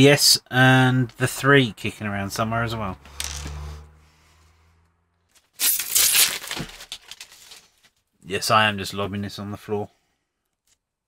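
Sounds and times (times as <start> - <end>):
plastic film tearing: 5.4 - 7.8
plastic film crackling: 5.4 - 7.9.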